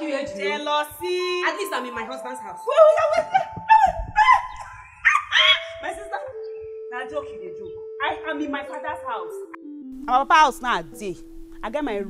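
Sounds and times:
background music with held note: 0.0 - 4.3, 5.7 - 12.0
loud vocal cries: 3.6 - 5.8.

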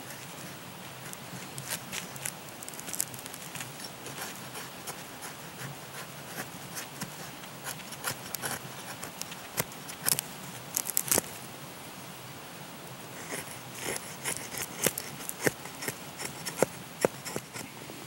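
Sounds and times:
knife scraping tinder: 1.1 - 10.2, 13.2 - 17.7.

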